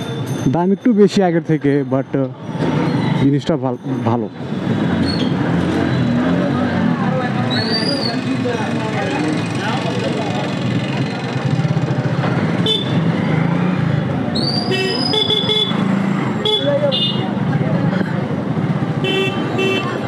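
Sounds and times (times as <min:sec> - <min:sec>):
street traffic: 0:00.0 - 0:20.0
street voices: 0:00.0 - 0:20.0
motorcycle engine rumbling: 0:02.3 - 0:20.0
horn toots: 0:12.6 - 0:13.2.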